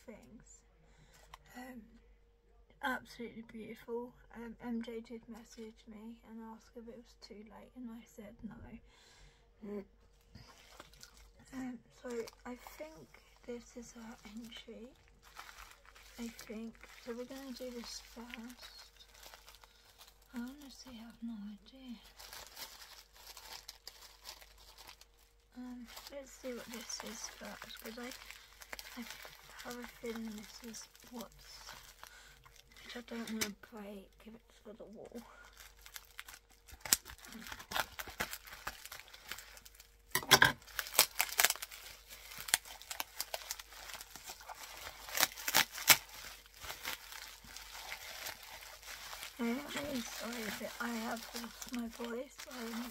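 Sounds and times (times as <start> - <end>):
bubble wrap crinkling: 10.1 - 52.9.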